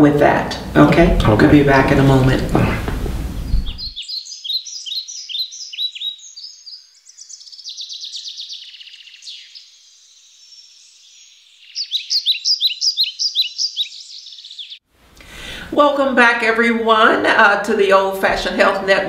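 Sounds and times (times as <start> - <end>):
bird chirping and trilling: 3.4 - 14.8.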